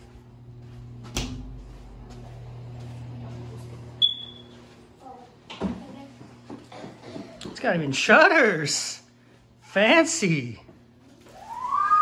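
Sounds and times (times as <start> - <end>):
steady low hum: 0.0 - 11.2.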